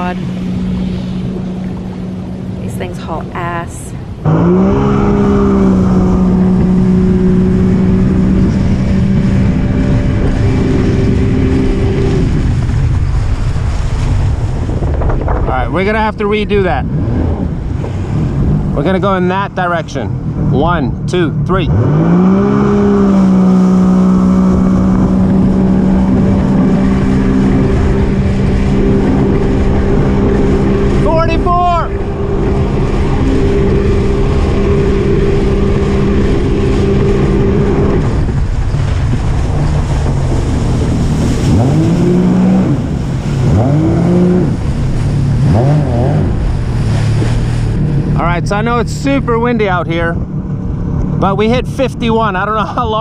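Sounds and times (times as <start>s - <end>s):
jet ski engine revving: 0.0s - 53.0s
water noise: 0.0s - 53.0s
wind rushing on microphone: 0.0s - 53.0s.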